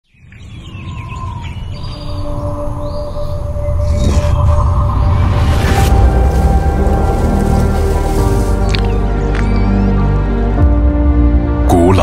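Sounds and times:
birds chirping: 0.0s - 10.6s
low music drone: 1.5s - 12.0s.

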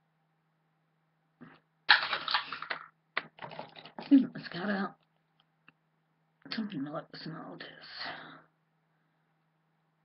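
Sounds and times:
faint steady hum: 0.0s - 10.0s
rustling and clattering: 1.4s - 4.3s
small objects rattling: 1.9s - 4.3s.

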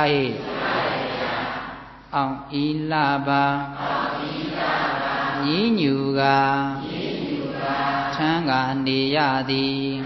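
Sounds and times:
monk chanting: 0.0s - 10.0s.

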